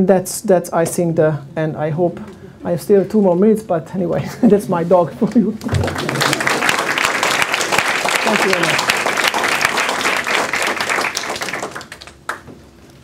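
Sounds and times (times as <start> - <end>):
audience applauding: 5.6 - 12.5.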